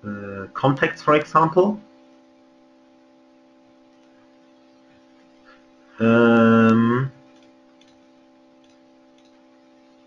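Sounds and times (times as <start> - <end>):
person saying uh: 0.0 - 0.9, 6.0 - 7.2
faint electrical hum: 0.0 - 10.0
computer mouse clicks: 3.9 - 4.2, 7.3 - 9.5.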